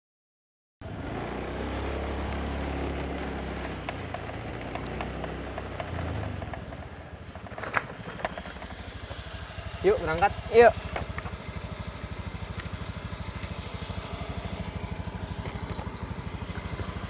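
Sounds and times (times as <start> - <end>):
scooter engine running: 0.8 - 17.0.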